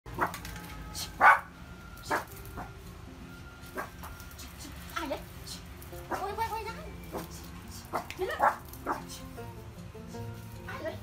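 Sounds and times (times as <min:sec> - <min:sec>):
small dog barking: 0:01.0 - 0:01.5, 0:07.9 - 0:09.1.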